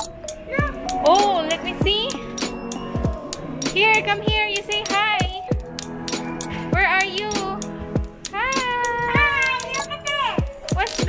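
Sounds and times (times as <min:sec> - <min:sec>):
background music with a beat: 0:00.0 - 0:11.0.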